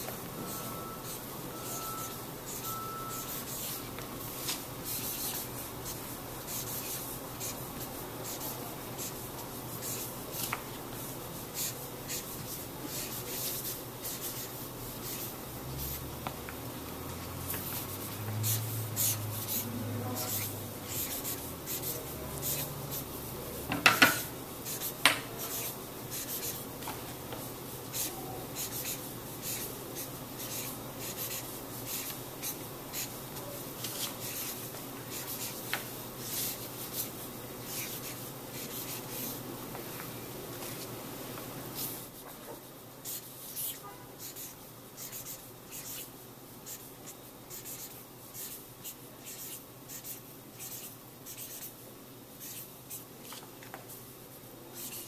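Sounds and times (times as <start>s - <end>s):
marker scratching on paper: 0.0s - 16.4s, 17.2s - 26.7s, 27.8s - 40.9s, 43.0s - 51.8s, 52.4s - 53.4s, 54.7s - 55.0s.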